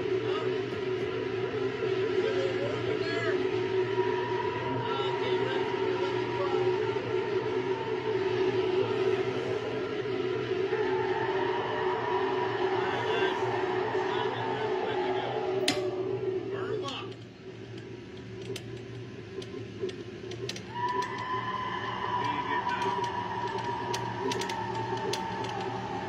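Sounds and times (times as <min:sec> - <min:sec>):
murmur of voices: 0:00.0 - 0:17.4
eerie drone: 0:00.0 - 0:26.0.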